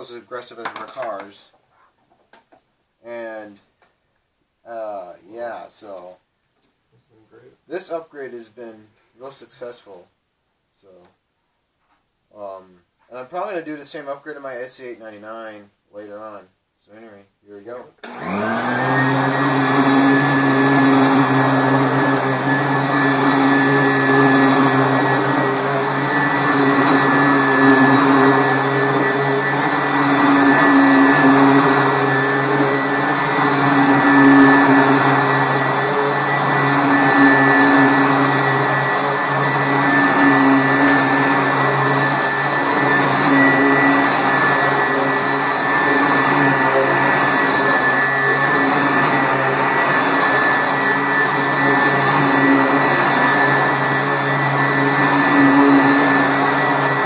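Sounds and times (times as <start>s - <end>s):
upright vacuum running over carpet: 18.0s - 57.0s.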